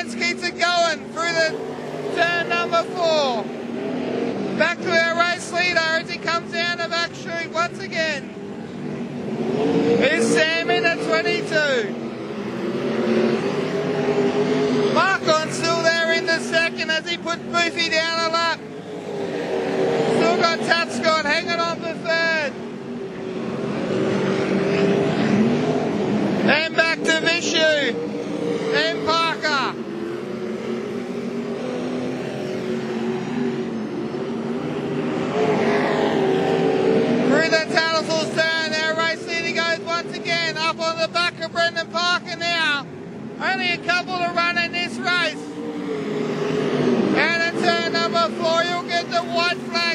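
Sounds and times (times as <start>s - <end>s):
race car engine running hard: 0.0s - 49.9s.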